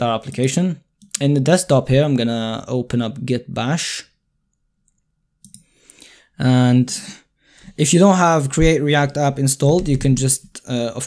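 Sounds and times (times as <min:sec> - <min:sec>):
computer mouse clicks: 0:04.8 - 0:05.7.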